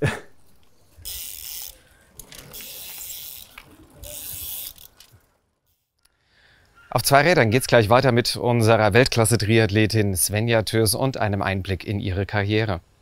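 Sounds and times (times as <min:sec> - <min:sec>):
bicycle freewheel ratchet buzzing: 0:00.6 - 0:05.9.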